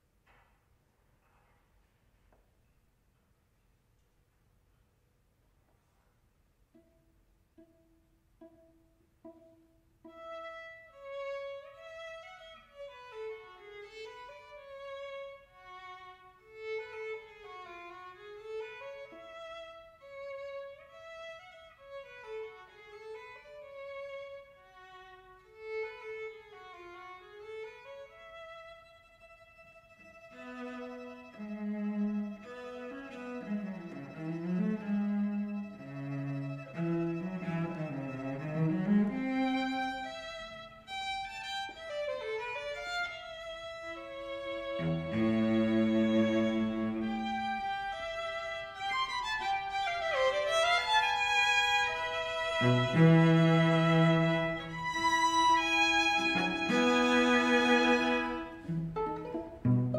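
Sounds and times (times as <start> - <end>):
string trio playing a dance piece: 6.6 - 59.9.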